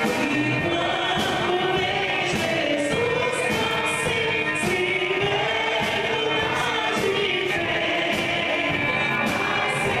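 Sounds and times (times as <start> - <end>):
band with drums and electric guitar: 0.0 - 10.0
gospel singing: 0.0 - 10.0.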